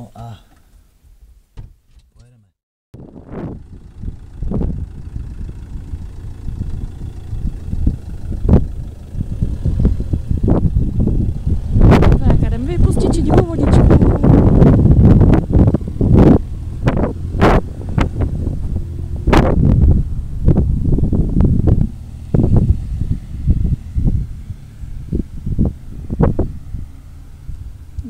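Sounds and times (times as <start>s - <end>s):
campervan engine running: 3.0s - 28.0s
wind buffeting microphone: 3.0s - 28.0s.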